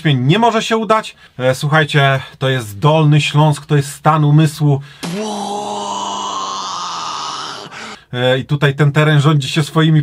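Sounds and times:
held vocal tone: 5.0 - 8.1.

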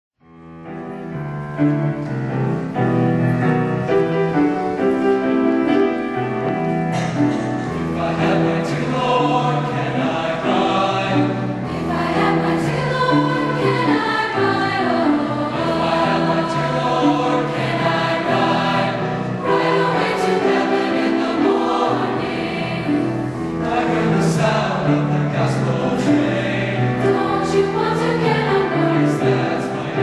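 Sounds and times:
piano: 0.2 - 30.0
mixed choir singing: 6.9 - 30.0.

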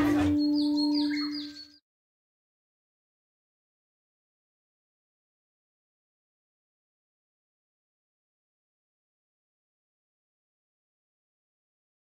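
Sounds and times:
short bird-like chirps: 0.0 - 1.8.

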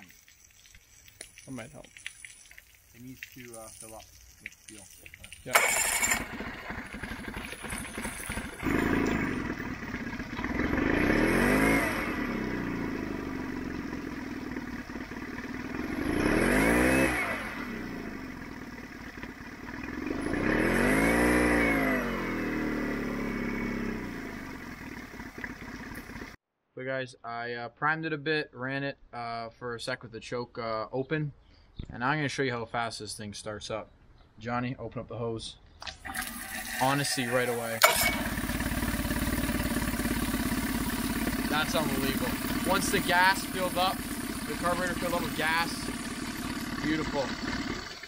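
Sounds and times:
outboard engine revving: 5.5 - 26.4, 36.0 - 48.0.

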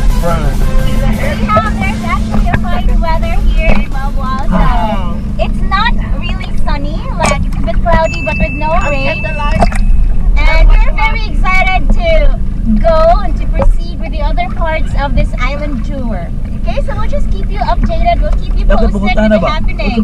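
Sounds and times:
boat engine humming: 0.0 - 20.0
people talking and exclaiming: 0.0 - 20.0.

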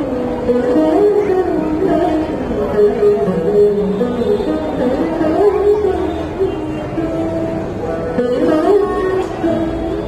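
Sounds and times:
plucked veena notes sliding: 0.0 - 10.0.

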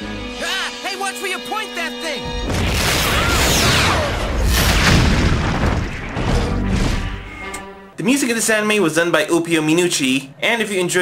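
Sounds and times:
music: 0.0 - 2.5, 6.1 - 8.0
cartoon explosion boom: 2.3 - 7.2.

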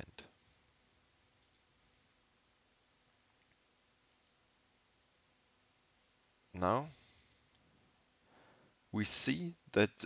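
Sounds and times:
faint computer mouse clicks: 1.4 - 1.7, 3.2 - 4.4.

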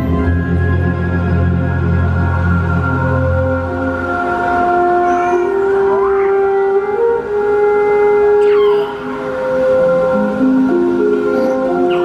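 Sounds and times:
soundtrack music over loudspeakers: 0.0 - 12.0.

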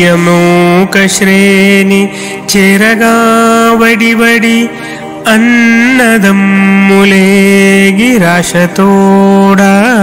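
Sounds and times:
man singing long held notes: 0.0 - 10.0.

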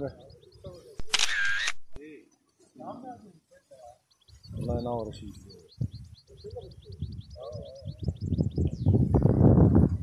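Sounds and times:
songbird chirping: 0.0 - 9.4.

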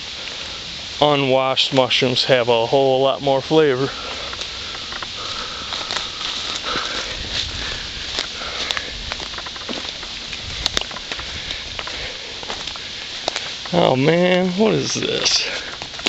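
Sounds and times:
footsteps through dry leaves: 3.4 - 16.0.

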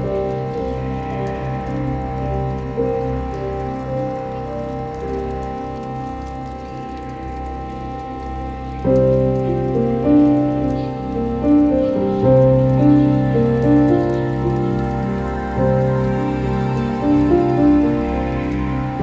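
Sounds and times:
calm ambient music: 0.0 - 19.0
faint rain-like patter: 0.0 - 19.0
low drone: 0.0 - 19.0.

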